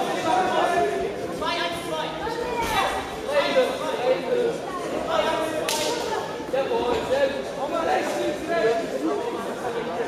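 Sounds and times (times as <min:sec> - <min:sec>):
chatter of spectators: 0:00.0 - 0:10.0.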